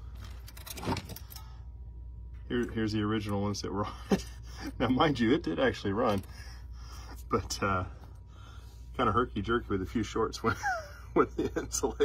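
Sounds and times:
wires and metal parts rattling: 0.0s - 1.6s
steady low hum: 0.0s - 12.0s.

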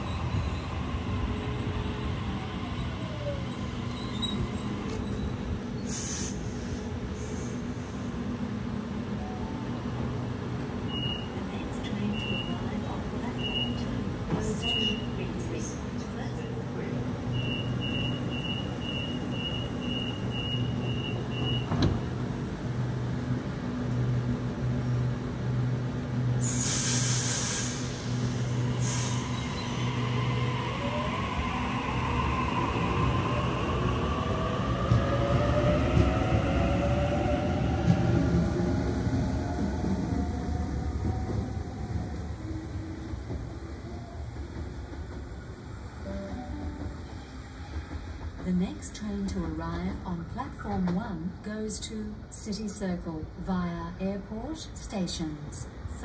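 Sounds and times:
loud hiss of air: 5.8s - 8.1s, 26.4s - 29.8s
door-closing beeps: 17.4s - 22.0s
train doors thudding shut: 17.4s - 22.2s.

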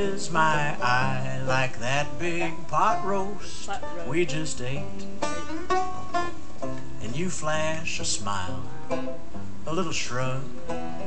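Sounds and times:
banjo picking: 0.0s - 11.0s.

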